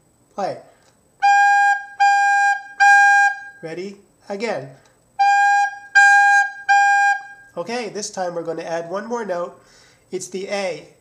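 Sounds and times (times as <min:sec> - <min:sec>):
soprano recorder notes: 0:01.2 - 0:03.6, 0:05.2 - 0:07.6.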